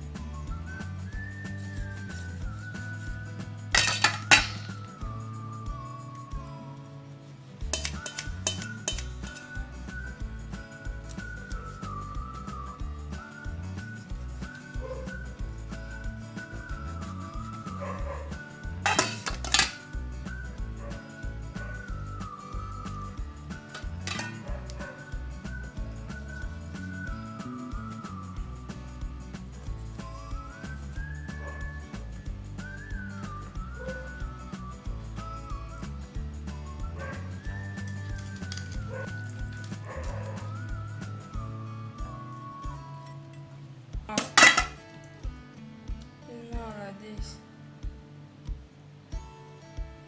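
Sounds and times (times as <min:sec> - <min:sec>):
background music melody: 0:00.0 - 0:50.0
knife clinking on cutting board: 0:03.8 - 0:04.7, 0:07.7 - 0:09.4, 0:18.9 - 0:19.8, 0:23.8 - 0:24.4, 0:44.2 - 0:44.8
sharp loud clack: 0:23.8 - 0:24.5.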